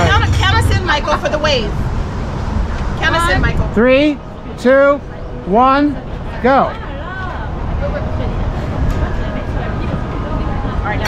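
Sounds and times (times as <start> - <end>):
low rumble of city ambience: 0.0 - 11.0
faint background voices: 2.5 - 11.0.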